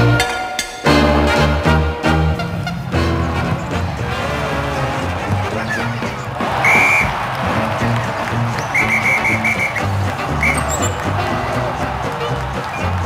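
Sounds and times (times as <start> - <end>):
referee's whistle blasts: 6.5 - 7.2, 8.5 - 11.4.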